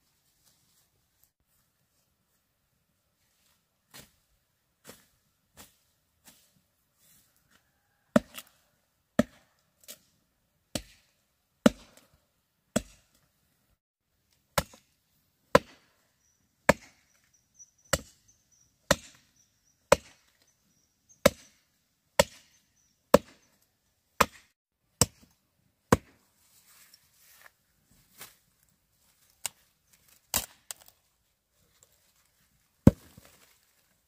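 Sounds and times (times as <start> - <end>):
machete chopping wood: 8.1 - 8.5, 9.2 - 10.0, 10.7 - 12.1, 12.7 - 13.1, 14.6 - 14.9, 15.5 - 15.9, 16.7 - 17.1, 18.9 - 19.3, 19.9 - 20.3, 21.2 - 21.6, 22.2 - 23.5, 24.2 - 25.3, 25.9 - 26.2, 30.3 - 30.9, 32.8 - 33.4.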